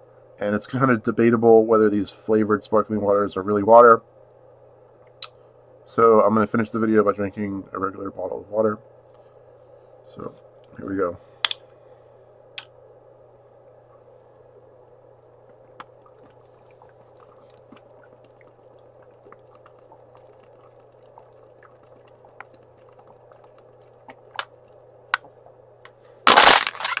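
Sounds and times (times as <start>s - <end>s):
steady low hum: 0.0s - 27.0s
swallowing clicks: 14.4s - 25.5s
plastic bottle crinkling: 26.3s - 27.0s.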